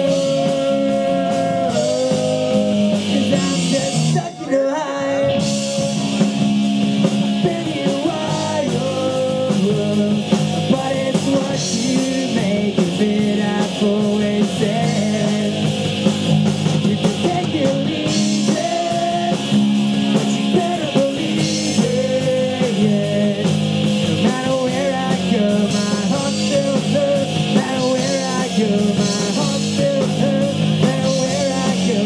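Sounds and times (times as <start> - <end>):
drum kit with cymbals: 0.0 - 32.0
electric guitars: 0.0 - 32.0.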